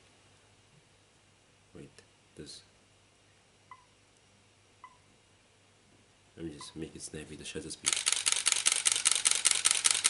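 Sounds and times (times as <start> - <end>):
faint electronic camera beeps: 3.7 - 4.0, 4.8 - 5.1, 7.9 - 10.0.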